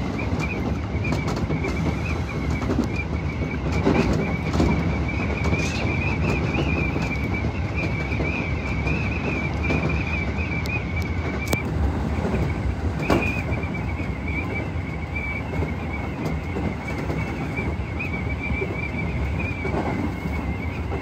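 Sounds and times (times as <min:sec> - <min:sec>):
rumble of train wheels on rail: 0:00.0 - 0:21.0.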